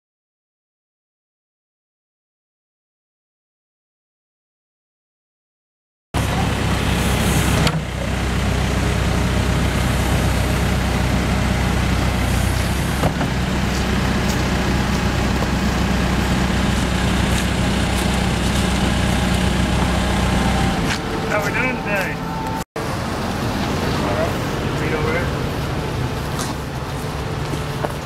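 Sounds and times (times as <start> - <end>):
diesel engine running: 6.2 - 28.0.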